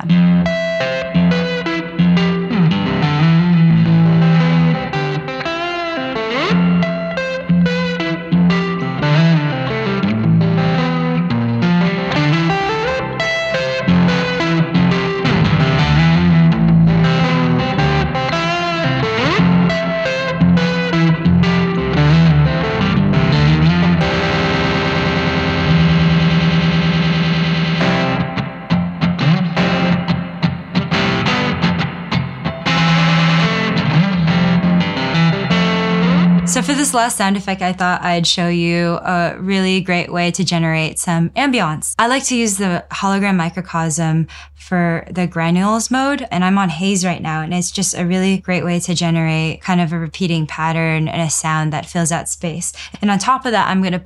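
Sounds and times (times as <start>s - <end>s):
electric guitar riff with effects: 0.0s - 44.6s.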